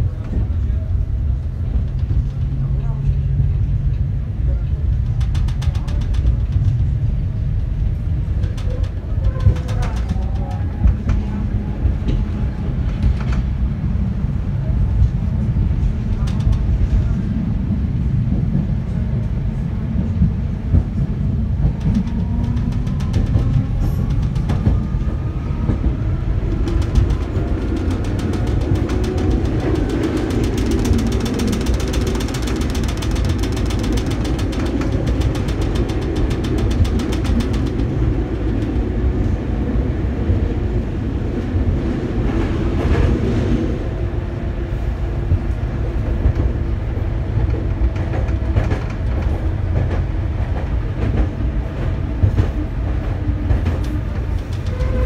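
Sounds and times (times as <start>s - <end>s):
tram wheels rumbling on rail: 0.0s - 55.0s
wheels clacking over rail: 4.9s - 13.5s, 20.7s - 39.1s
fast fine rattle: 26.5s - 38.6s.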